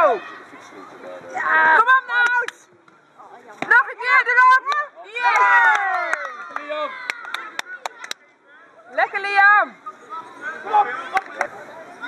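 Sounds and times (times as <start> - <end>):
hand claps: 5.4 - 8.2, 11.1 - 11.5.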